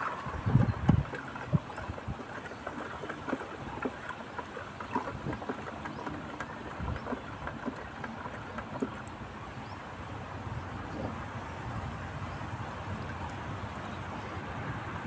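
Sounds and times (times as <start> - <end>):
liquid sloshing in bucket: 0.0 - 9.5.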